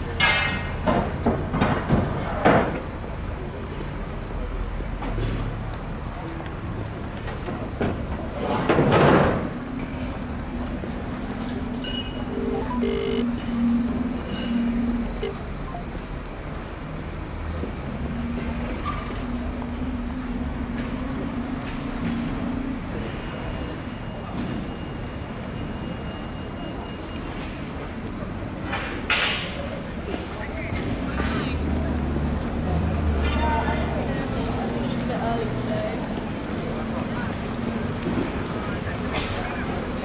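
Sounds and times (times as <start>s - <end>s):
street ambience: 0.0s - 40.0s
low held tone: 11.8s - 15.8s.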